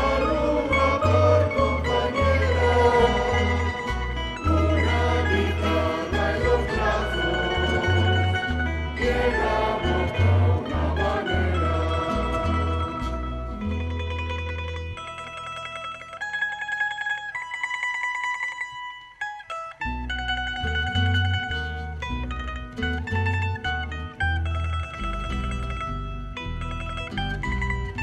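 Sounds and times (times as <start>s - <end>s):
plucked string ensemble: 0.0s - 28.0s.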